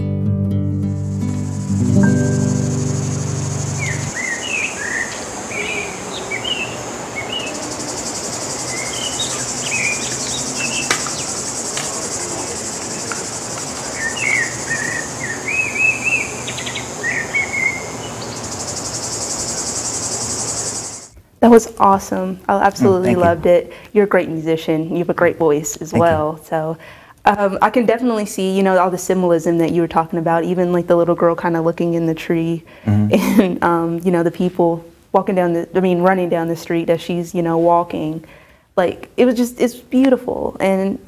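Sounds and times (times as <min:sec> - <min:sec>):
guitar music: 0:00.0 - 0:04.2, 0:22.8 - 0:23.6
insects chorus: 0:01.0 - 0:21.1
bird chirps: 0:01.2 - 0:21.1.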